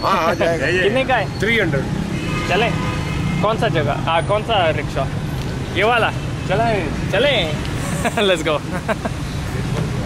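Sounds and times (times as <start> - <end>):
men talking: 0.0 - 10.0
street traffic rumble: 0.0 - 10.0.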